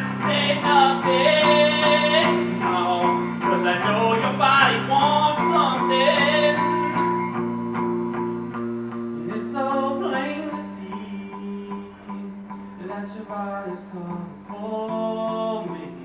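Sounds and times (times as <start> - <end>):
man singing: 0.0 - 7.6, 9.1 - 16.0
electric guitar chords: 0.0 - 16.0.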